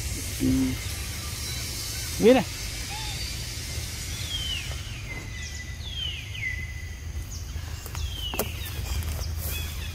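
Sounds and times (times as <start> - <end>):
bird whistling: 0.4 - 6.9.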